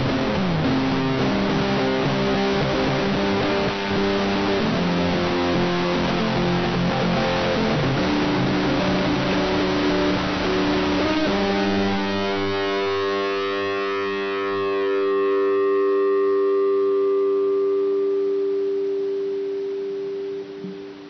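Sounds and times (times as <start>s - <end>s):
guitar chord ringing out: 0.0s - 21.0s.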